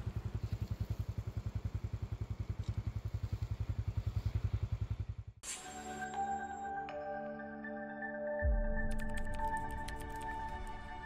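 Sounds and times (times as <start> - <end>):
small engine idling: 0.0 - 5.4
music with ringing tones: 5.4 - 11.0.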